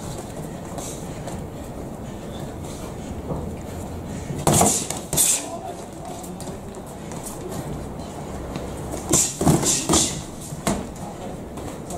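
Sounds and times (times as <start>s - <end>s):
gym room rumble: 0.0s - 11.9s.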